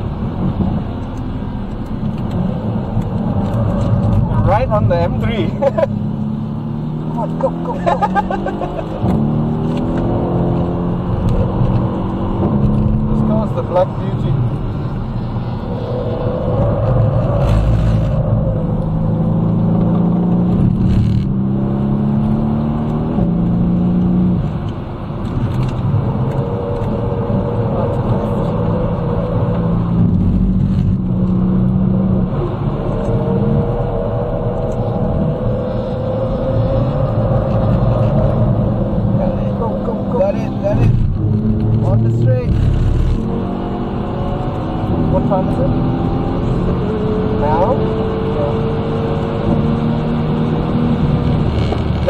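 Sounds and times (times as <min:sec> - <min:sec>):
car engine under hard driving: 0:00.0 - 0:52.0.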